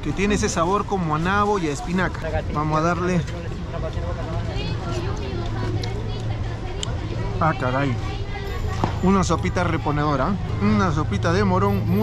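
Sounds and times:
people talking: 0:00.0 - 0:12.0
traffic hum: 0:00.0 - 0:12.0.

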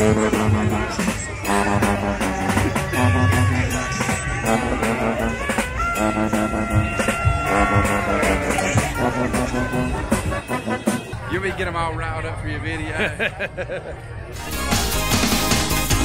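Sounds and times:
small brass band playing: 0:00.0 - 0:11.8, 0:14.4 - 0:16.0.

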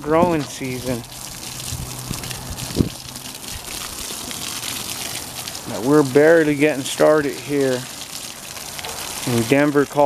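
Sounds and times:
hose water spraying and splashing: 0:00.0 - 0:10.0.

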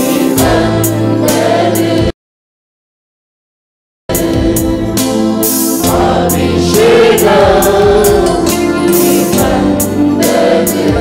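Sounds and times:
band with steady drum beat: 0:00.0 - 0:02.1, 0:04.1 - 0:11.0.

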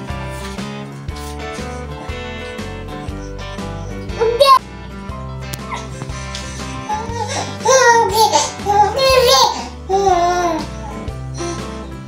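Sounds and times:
background music: 0:00.0 - 0:12.0
baby babbling and cooing: 0:04.0 - 0:04.6, 0:06.8 - 0:11.7.

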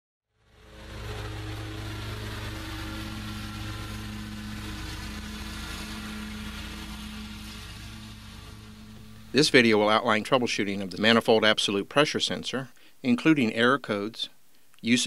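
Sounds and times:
engine running steadily: 0:00.4 - 0:12.0.

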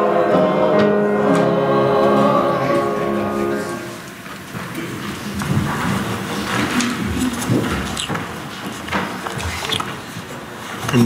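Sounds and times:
choir singing: 0:00.0 - 0:04.2.

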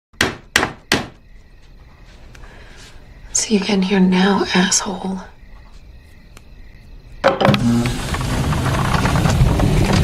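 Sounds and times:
hammer hitting a nail: 0:00.2 - 0:01.2.

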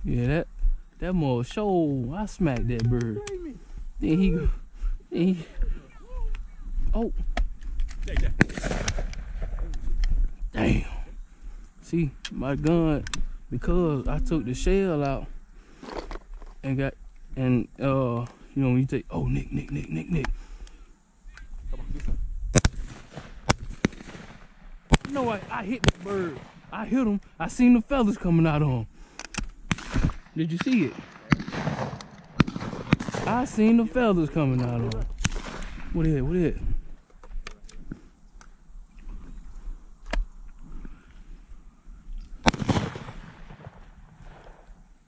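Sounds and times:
shotgun shots: 0:08.4 - 0:09.6, 0:22.5 - 0:26.7, 0:29.7 - 0:33.8, 0:35.2 - 0:35.9, 0:42.4 - 0:44.6.

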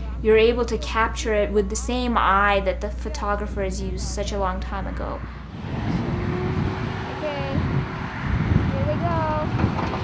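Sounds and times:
diesel engines rumbling: 0:00.0 - 0:10.0.

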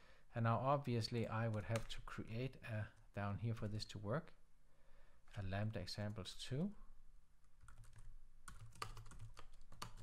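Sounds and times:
typing on computer keyboard: 0:07.6 - 0:10.0.

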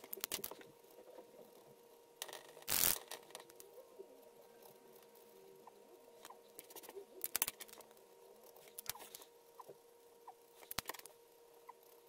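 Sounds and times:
sharp plastic clicks of pens: 0:07.2 - 0:07.8, 0:10.6 - 0:11.1
marker tip squeaking: 0:08.8 - 0:09.7.

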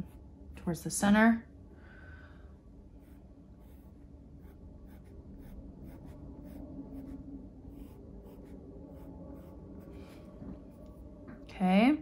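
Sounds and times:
pencil scratching on paper: 0:03.0 - 0:10.2.

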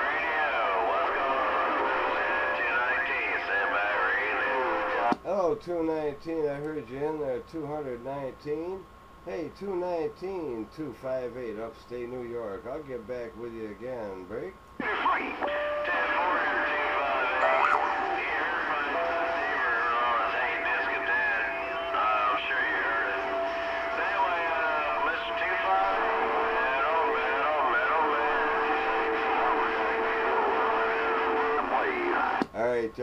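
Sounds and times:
distorted radio voices talking: 0:00.0 - 0:05.2, 0:14.8 - 0:32.5
radio whistling tones: 0:14.8 - 0:32.5.

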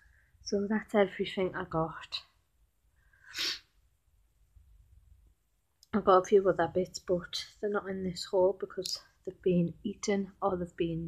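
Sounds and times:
sneeze-like burst of breath: 0:03.2 - 0:03.7.

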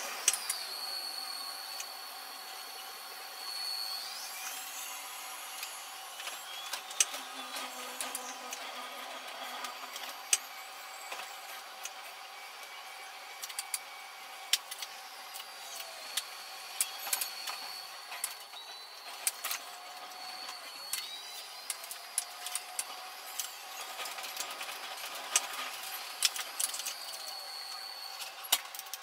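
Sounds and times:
faint rising and falling whine: 0:00.0 - 0:29.0.

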